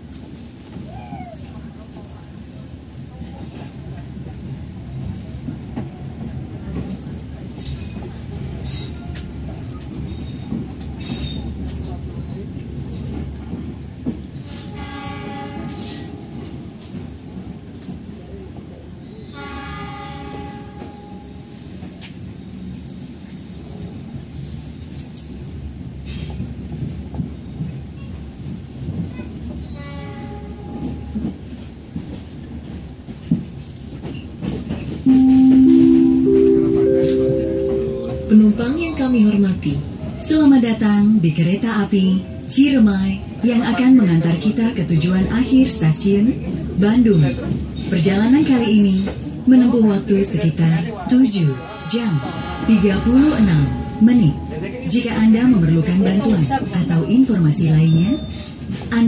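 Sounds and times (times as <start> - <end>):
train carriage rumble: 0.0 - 59.0
train horn blasts: 14.6 - 16.3, 19.4 - 21.5, 29.8 - 31.0, 35.1 - 39.1, 51.4 - 54.9
rising public-address chime: 35.1 - 39.7.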